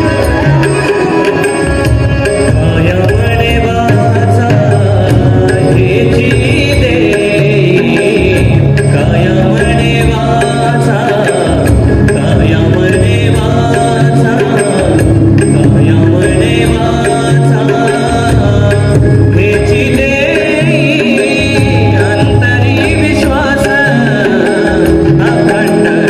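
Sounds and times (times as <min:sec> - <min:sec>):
hand drums: 0:00.0 - 0:26.0
harmonium chords: 0:00.0 - 0:26.0.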